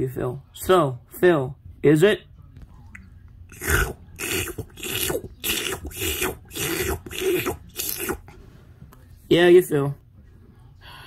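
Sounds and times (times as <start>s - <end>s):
person making raspy creature noises: 3.5s - 8.3s.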